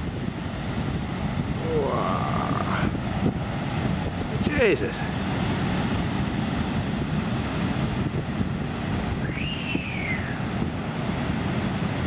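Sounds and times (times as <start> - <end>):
surf crashing: 0.0 - 12.0
wind buffeting microphone: 0.0 - 12.0
bird call: 9.2 - 10.5.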